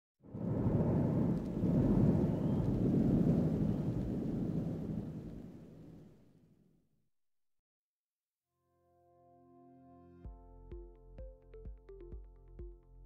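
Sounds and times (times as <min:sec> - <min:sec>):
deep noisy cinematic rumble: 0:00.3 - 0:05.8.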